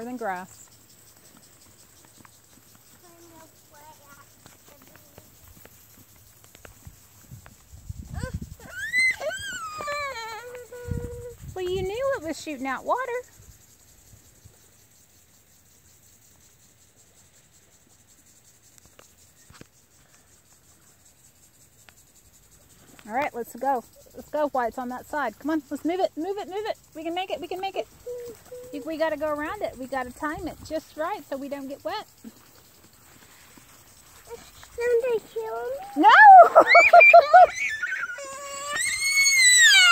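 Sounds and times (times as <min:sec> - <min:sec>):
crickets chirring: 0:00.0 - 0:39.9
high-pitched voice calling out: 0:28.0 - 0:28.9.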